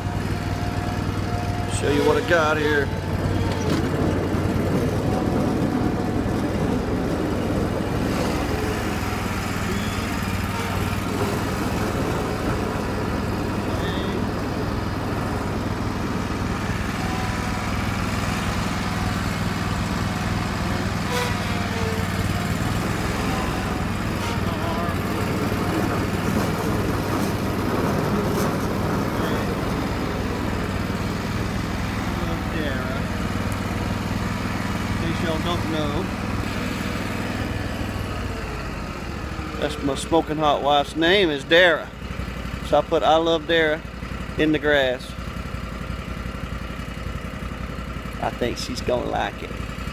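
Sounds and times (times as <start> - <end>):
lawn mower engine running: 0.0 - 49.9.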